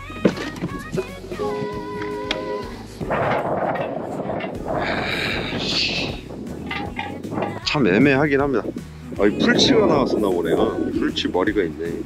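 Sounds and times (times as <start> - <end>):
background music: 0.0 - 12.0
wind buffeting microphone: 0.8 - 12.0.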